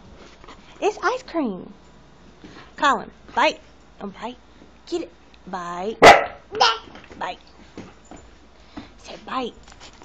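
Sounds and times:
dog barking: 0:06.0 - 0:06.4.

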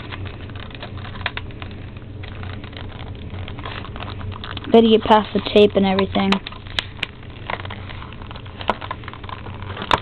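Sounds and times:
low hum: 0:00.0 - 0:10.0
packaging clicks and crackles: 0:00.0 - 0:10.0.

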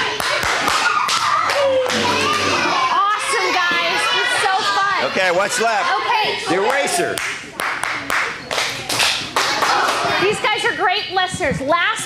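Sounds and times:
children clapping: 0:00.0 - 0:02.6, 0:06.7 - 0:10.1
rhythmic hand clapping: 0:00.0 - 0:02.6, 0:06.6 - 0:10.2.

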